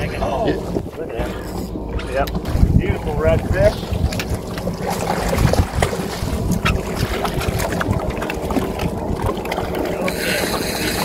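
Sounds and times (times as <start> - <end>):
wind buffeting microphone: 0.0 - 11.0
fish thrashing in water: 3.6 - 11.0.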